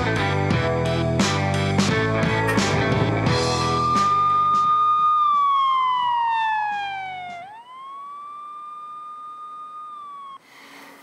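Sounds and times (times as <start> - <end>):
background music: 0.0 - 7.5
siren wailing: 2.5 - 10.4.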